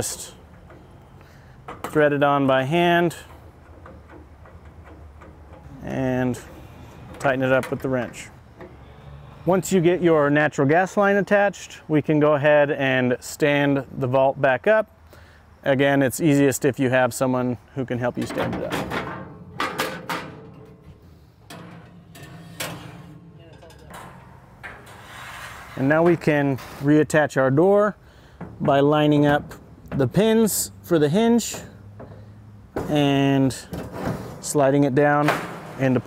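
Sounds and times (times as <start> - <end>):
metal trays clanking: 0.0 - 8.9, 18.0 - 26.9, 28.3 - 36.0
metal racks scraping: 0.0 - 10.6, 17.9 - 36.0.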